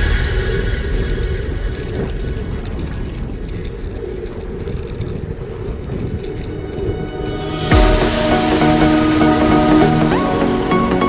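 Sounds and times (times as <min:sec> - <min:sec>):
bicycle rattles and clicks: 0:00.0 - 0:11.0
bicycle tyres rumbling on road: 0:00.0 - 0:11.0.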